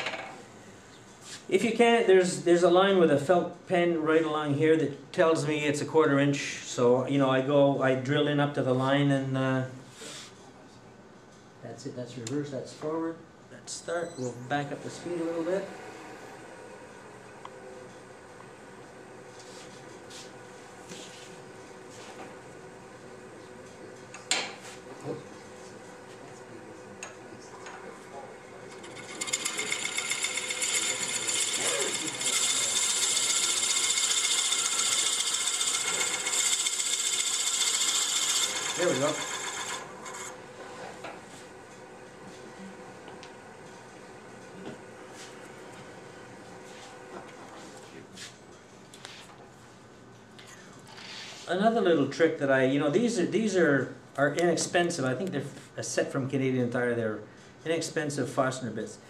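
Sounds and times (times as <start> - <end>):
wood lathe humming: 14.7 - 23.2, 27.9 - 47.8
drill bit boring into wood: 28.7 - 40.4.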